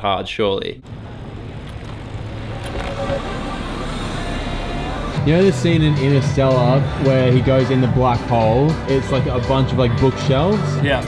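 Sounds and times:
city street traffic: 0:00.8 - 0:11.0.

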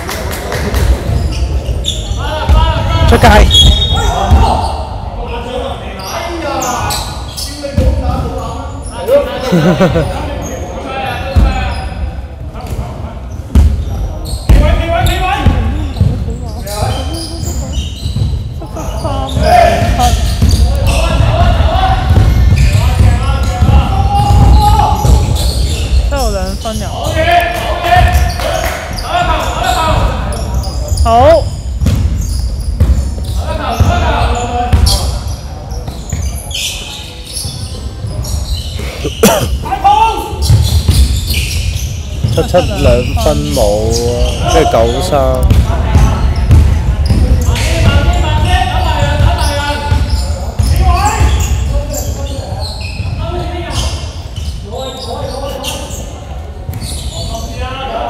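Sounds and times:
players calling out: 0:36.3 - 0:54.0.

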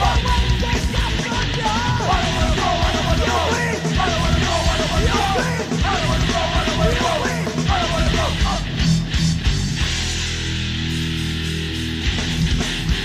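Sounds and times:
high bending lead guitar line: 0:00.0 - 0:13.0
metal band playing: 0:00.0 - 0:13.0.

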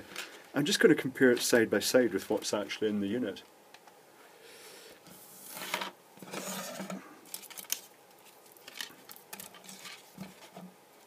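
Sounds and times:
plastic light panel rustling and scraping: 0:05.1 - 0:10.8.

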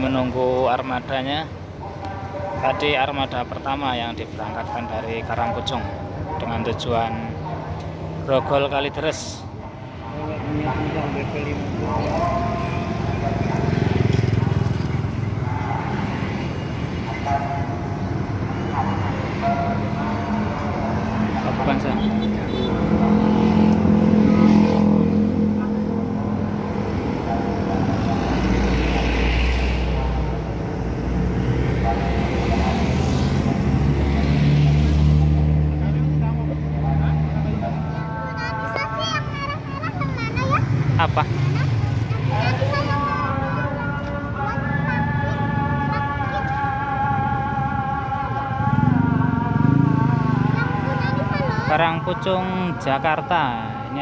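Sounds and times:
car passing: 0:00.0 - 0:54.0
motorcycles passing: 0:00.0 - 0:54.0
background voices: 0:09.2 - 0:54.0
bus diesel engine: 0:09.2 - 0:54.0.

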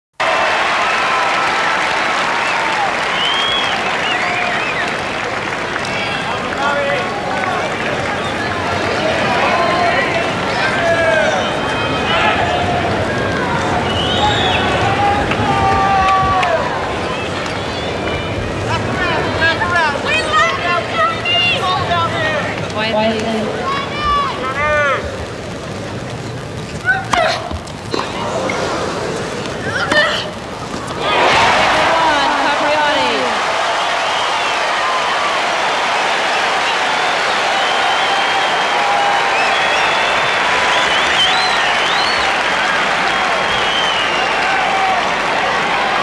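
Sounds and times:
murmur of crowd: 0:02.5 - 0:46.0.

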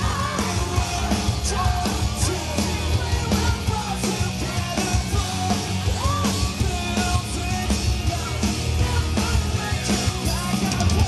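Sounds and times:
drums: 0:00.0 - 0:11.0
electric guitar: 0:00.0 - 0:11.0
live pop-punk band playing: 0:00.0 - 0:11.0.

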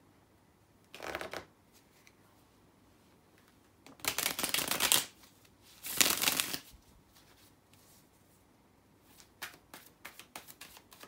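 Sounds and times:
cards being riffle-shuffled: 0:03.9 - 0:07.5, 0:09.1 - 0:11.0.

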